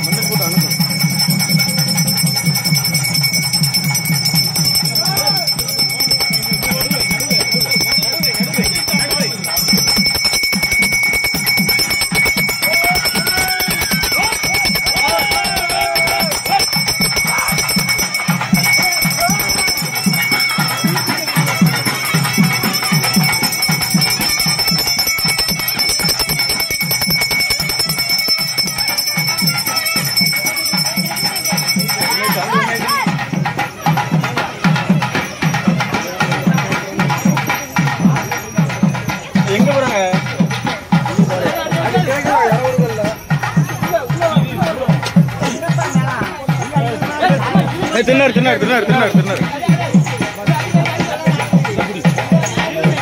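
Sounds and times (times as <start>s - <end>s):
high ringing tone: 0.0s - 33.1s
fast drumming: 0.0s - 53.0s
voices rising: 0.0s - 53.0s.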